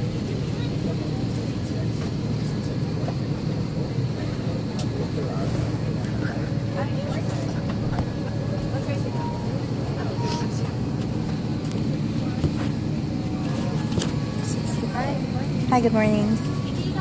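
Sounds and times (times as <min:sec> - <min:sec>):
airliner cabin drone: 0:00.0 - 0:17.0
faint voices murmuring: 0:00.0 - 0:17.0.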